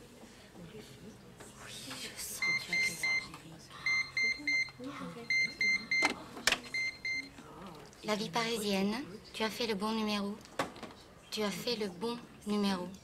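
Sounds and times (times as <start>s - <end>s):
telephone keypad beeps: 3.9s - 7.3s.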